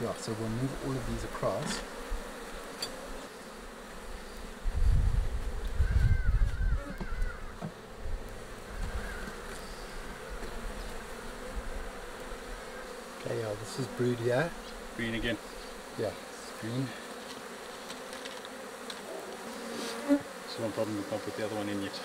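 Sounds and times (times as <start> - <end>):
bees buzzing: 0.0 - 22.0.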